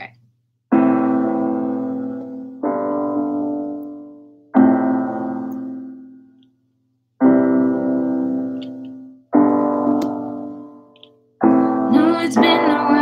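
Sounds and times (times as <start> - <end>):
slow piano chords ringing: 0.7 - 13.0.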